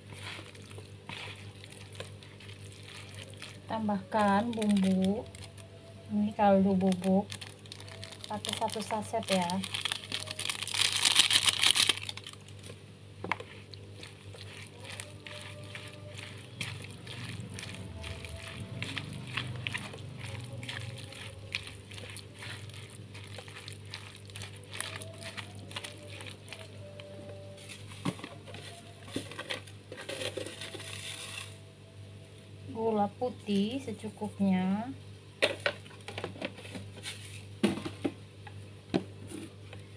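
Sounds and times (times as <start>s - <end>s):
crackers mixed in a bowl: 0.0s - 5.7s, 6.4s - 31.6s
seasoning sachet crinkling: 0.0s - 5.8s, 6.4s - 12.8s, 13.4s - 31.5s
faint steady hum: 0.0s - 39.9s.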